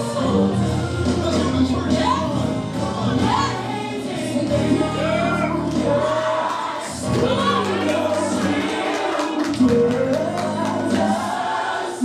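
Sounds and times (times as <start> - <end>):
gospel voices singing: 0.0 - 12.0.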